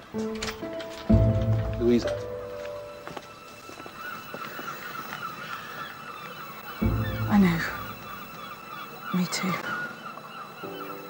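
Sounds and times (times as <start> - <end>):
gulls calling faintly: 0.0 - 11.0.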